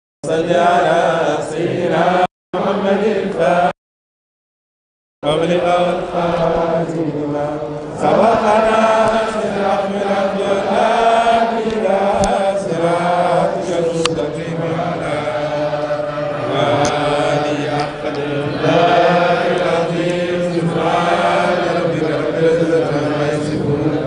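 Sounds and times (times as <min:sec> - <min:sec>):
men chanting: 0:00.2 - 0:03.8, 0:05.2 - 0:24.0.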